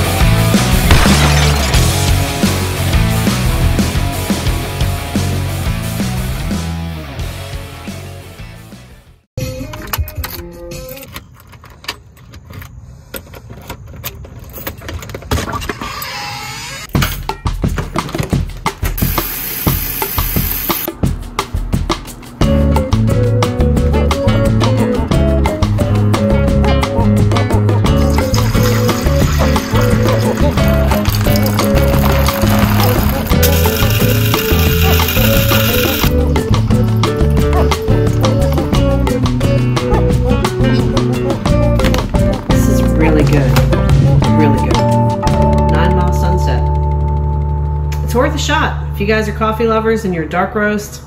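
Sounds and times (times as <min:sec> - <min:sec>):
background music: 0:00.0 - 0:11.2, 0:16.9 - 0:50.3
coffee grinder whirring: 0:19.0 - 0:20.9, 0:28.4 - 0:36.1.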